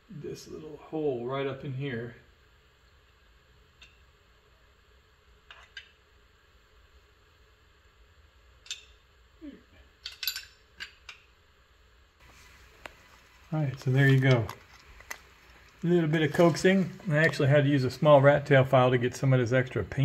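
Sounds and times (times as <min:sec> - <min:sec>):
metal brake parts clicking: 0:10.0 - 0:11.0.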